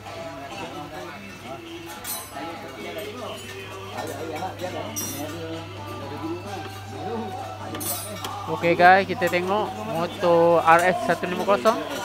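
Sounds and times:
background music: 0:00.0 - 0:12.0
metallic clink: 0:04.9 - 0:05.4.

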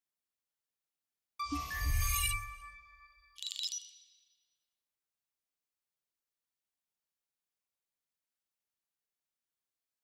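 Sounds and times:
ringing tones of logo sting: 0:01.4 - 0:04.0
bright high chime: 0:01.4 - 0:04.3.

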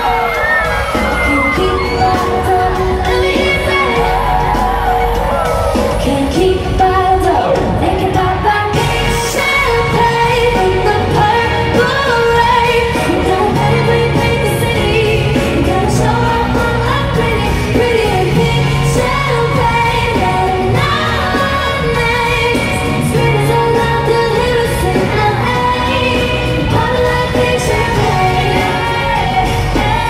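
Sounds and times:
live pop band: 0:00.0 - 0:30.0
woman singing: 0:00.0 - 0:30.0.

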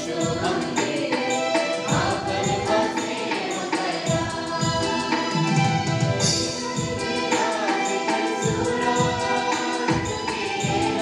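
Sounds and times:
drum beats: 0:00.0 - 0:11.0
keyboard sustained chords: 0:00.0 - 0:11.0.

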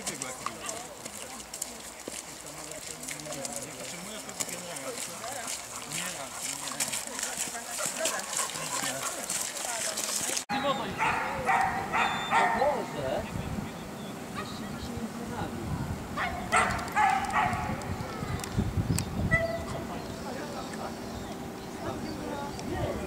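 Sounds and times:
footsteps on dirt track: 0:00.0 - 0:10.5
voices: 0:00.0 - 0:23.0
dog barking: 0:11.0 - 0:12.8, 0:14.4 - 0:14.6, 0:16.2 - 0:17.8, 0:19.3 - 0:19.7.

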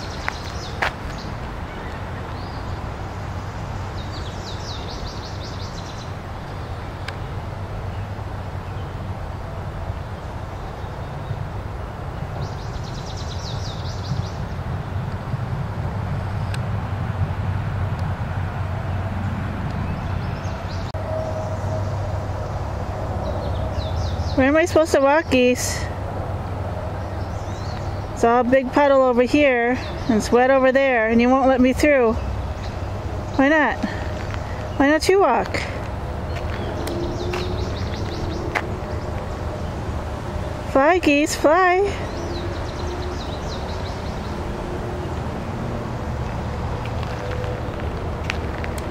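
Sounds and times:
birds chirping: 0:00.0 - 0:15.4, 0:19.7 - 0:48.9
steady low rumble: 0:05.8 - 0:48.9.

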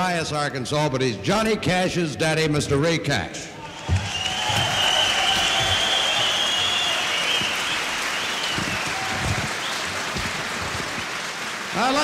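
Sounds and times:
audience applauding: 0:03.7 - 0:12.0.

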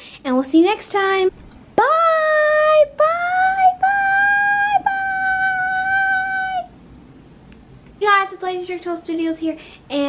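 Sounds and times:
child singing high note: 0:01.8 - 0:06.7.

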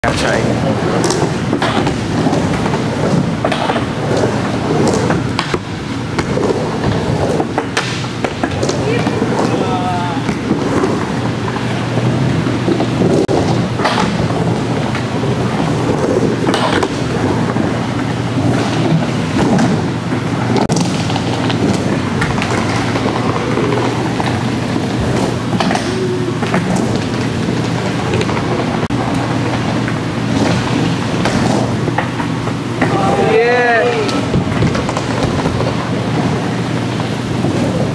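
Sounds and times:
skateboard wheels rolling: 0:00.1 - 0:37.9
skateboard clacking on coping: 0:00.2 - 0:37.9.

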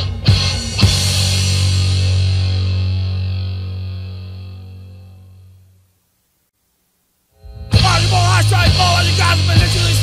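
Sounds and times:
bass guitar note ringing out: 0:01.2 - 0:05.8.

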